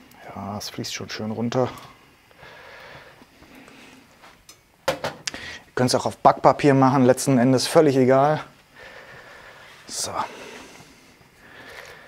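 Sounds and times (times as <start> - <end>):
person speaking: 9.9 - 10.8.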